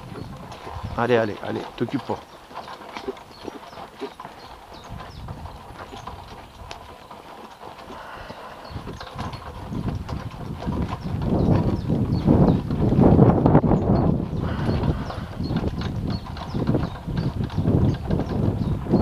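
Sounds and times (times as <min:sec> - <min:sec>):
wind on microphone: 0:00.0 - 0:01.6, 0:04.7 - 0:06.7, 0:07.9 - 0:19.0
hoofbeats on dirt track: 0:00.0 - 0:19.0.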